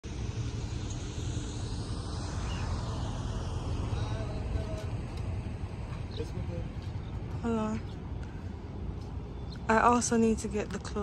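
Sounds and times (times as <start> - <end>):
faint outdoor hiss: 0.0 - 11.0.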